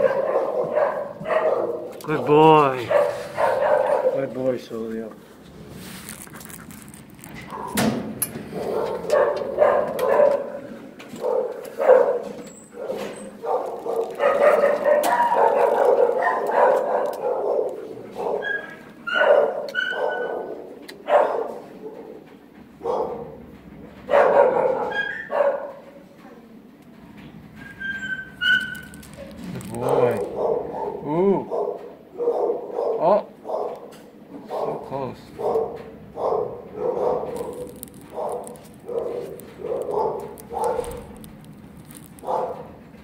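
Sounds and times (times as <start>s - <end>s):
dogs barking: 0.0s - 4.5s, 7.4s - 25.9s, 28.2s - 41.2s, 42.0s - 42.9s
dog yips and whines: 18.2s - 20.5s, 24.2s - 25.6s, 27.6s - 29.3s.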